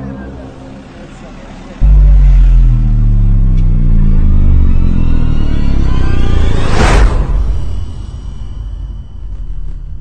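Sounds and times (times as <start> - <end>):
deep droning hum: 1.8 - 9.8.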